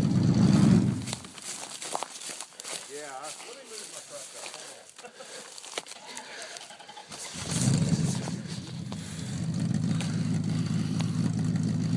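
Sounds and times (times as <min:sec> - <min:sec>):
truck engine starting and idling: 0:00.0 - 0:01.3, 0:05.9 - 0:11.9.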